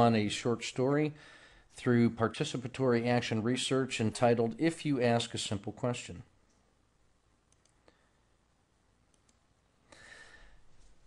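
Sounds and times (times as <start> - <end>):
faint clicks: 7.5 - 8.0, 9.1 - 9.5.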